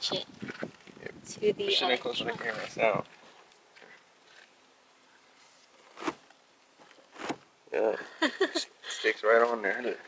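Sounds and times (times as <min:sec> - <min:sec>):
faint rustling: 0:02.0 - 0:08.2.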